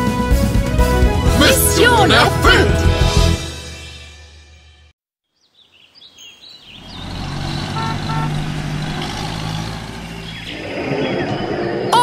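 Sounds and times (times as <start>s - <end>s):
birds chirping: 5.3s - 12.0s.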